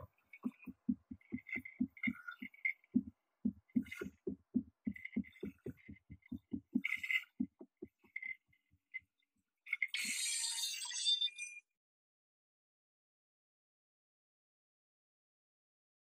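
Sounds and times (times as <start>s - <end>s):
low synth thuds: 0.0s - 8.0s
high clicks and chirps: 0.0s - 8.4s, 9.7s - 11.6s.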